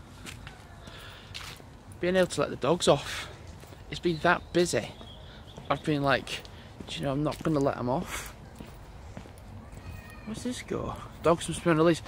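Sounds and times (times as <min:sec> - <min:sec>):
faint footsteps on a path: 0:00.0 - 0:12.0.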